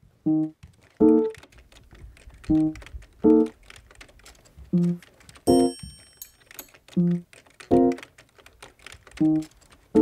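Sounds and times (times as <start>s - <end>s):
keyboard typing clicks: 0.2s - 10.0s.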